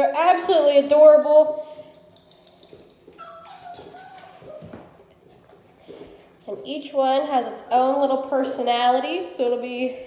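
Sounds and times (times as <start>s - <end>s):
puppy whimpering: 2.4s - 5.8s.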